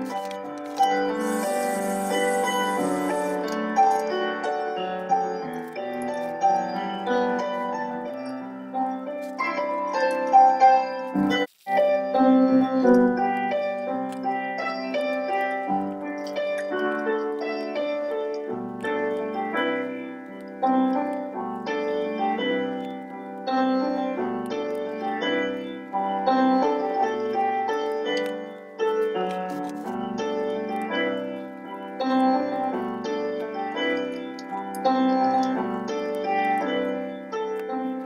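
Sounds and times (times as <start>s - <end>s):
piano music: 0.0s - 38.0s.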